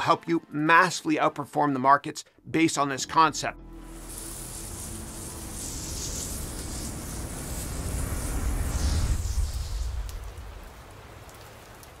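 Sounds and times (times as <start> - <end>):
logo reveal sound effect: 3.8 - 10.1
crackling hiss with ticks: 3.8 - 12.0.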